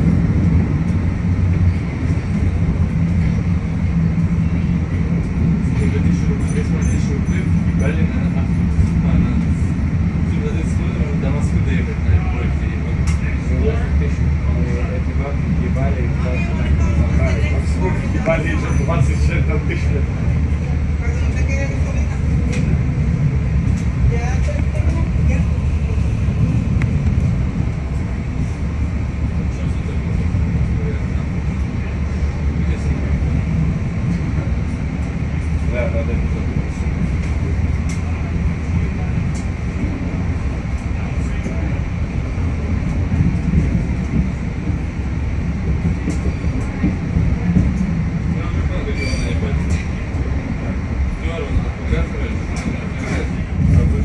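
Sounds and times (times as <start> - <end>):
train rumbling on rails: 0.0 - 54.0.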